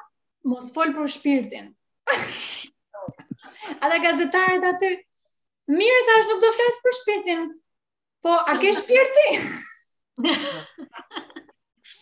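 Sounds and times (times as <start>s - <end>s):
woman talking: 3.0s - 5.0s, 5.7s - 7.6s, 8.2s - 9.4s
women laughing: 10.2s - 11.6s.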